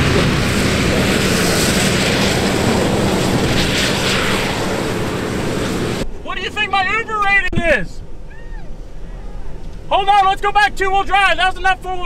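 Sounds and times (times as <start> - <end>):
truck engine at high revs: 0.0 - 6.0.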